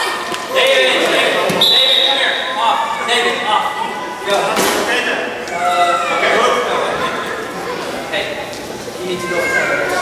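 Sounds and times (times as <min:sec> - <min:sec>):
children shouting: 0:02.1 - 0:04.7, 0:05.4 - 0:08.1, 0:09.0 - 0:10.0.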